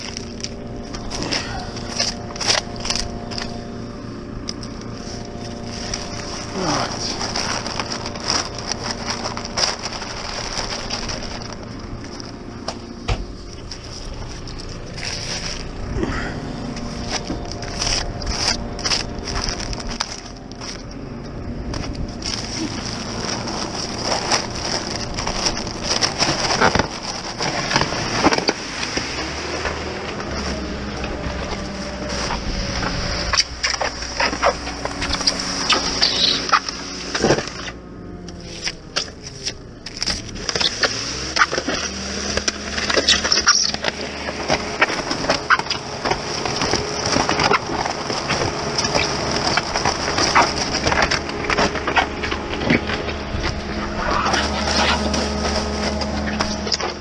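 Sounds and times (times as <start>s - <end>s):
engine running steadily: 0.0s - 57.0s
paper sacks crackling and rustling: 0.0s - 57.0s.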